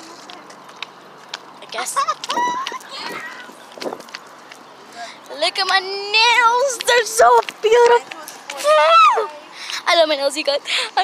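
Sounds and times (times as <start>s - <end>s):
girl laughing: 1.8s - 3.5s.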